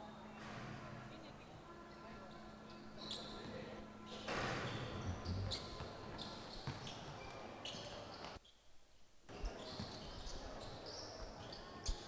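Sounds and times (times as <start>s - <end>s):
voices chattering: 1.0s - 8.4s
basketballs bouncing: 6.6s - 6.9s.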